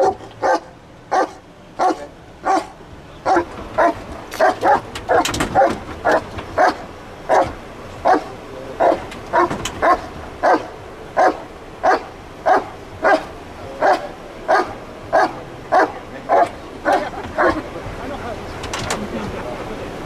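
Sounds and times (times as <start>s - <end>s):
dog barking: 0.0s - 17.6s.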